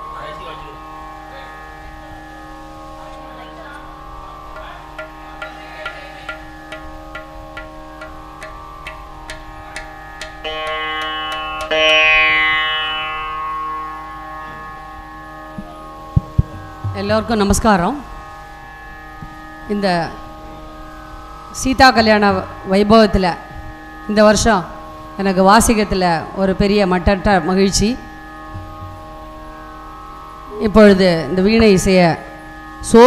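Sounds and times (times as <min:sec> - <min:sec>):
music drone of held tones: 0:00.0 - 0:33.0
plucked veena strings ringing: 0:00.0 - 0:33.0.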